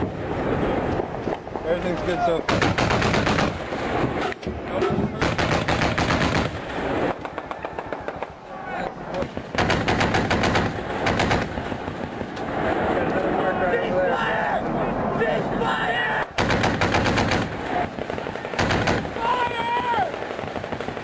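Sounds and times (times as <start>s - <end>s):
automatic gunfire bursts: 2.5s - 3.6s, 5.2s - 6.6s, 9.2s - 12.0s, 16.4s - 19.2s
scattered gunshots echoing: 2.5s - 3.7s, 5.2s - 6.7s, 9.2s - 12.3s, 16.4s - 21.0s.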